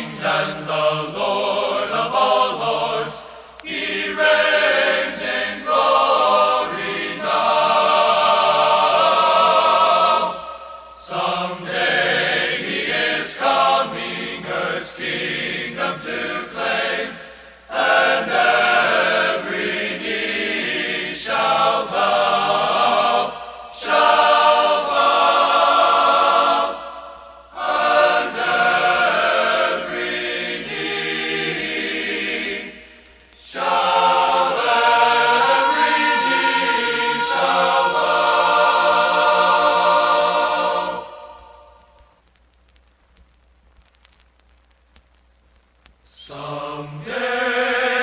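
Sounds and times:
men's choir singing: 0:00.0 - 0:41.8, 0:46.1 - 0:48.0.

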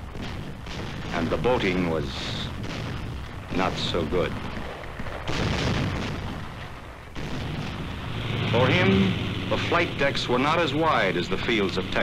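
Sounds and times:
shellfire blasts: 0:00.0 - 0:12.0.

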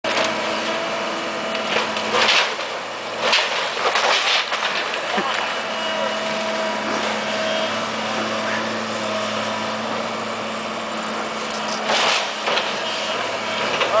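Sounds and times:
excavator running: 0:00.0 - 0:14.0
debris crashing: 0:01.6 - 0:05.6, 0:11.6 - 0:14.0.

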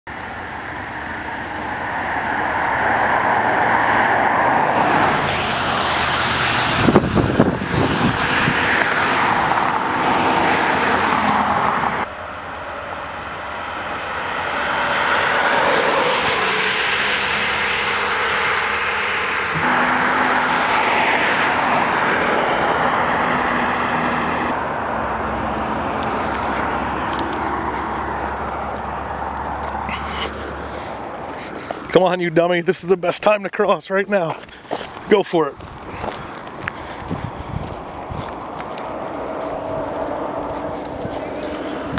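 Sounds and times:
cars passing at speed: 0:00.1 - 0:32.6, 0:33.2 - 0:41.9.

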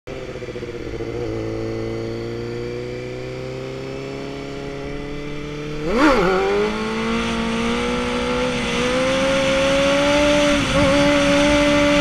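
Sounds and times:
motorcycle engine accelerating: 0:00.1 - 0:12.0
motorcycle engine revving sharply: 0:05.4 - 0:12.0.

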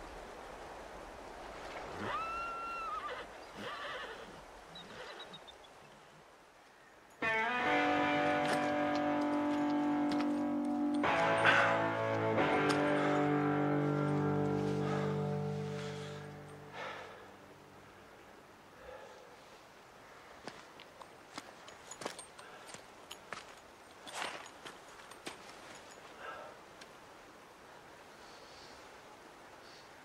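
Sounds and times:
faint outdoor ambience: 0:00.0 - 0:30.0
electric guitar ringing notes: 0:07.2 - 0:16.8.

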